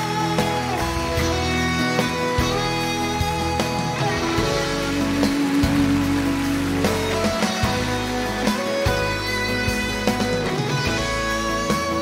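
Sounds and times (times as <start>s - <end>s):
pop band playing ballad: 0.0s - 12.0s.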